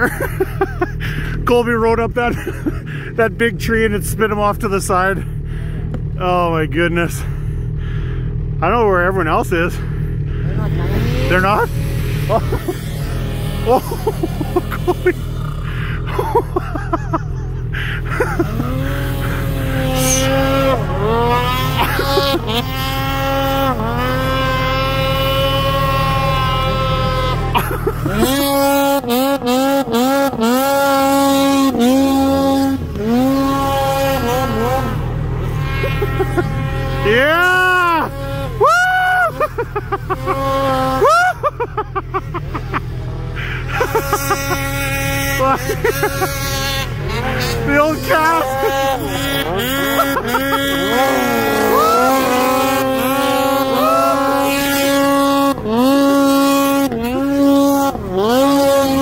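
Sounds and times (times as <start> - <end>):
low rumble: 0.0 - 21.8
snowmobile engines revving: 0.0 - 59.0.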